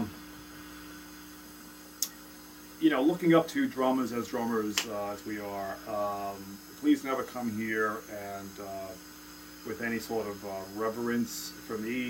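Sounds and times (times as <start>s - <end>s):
faint hiss: 0.0s - 12.0s
low electrical hum: 0.0s - 12.0s.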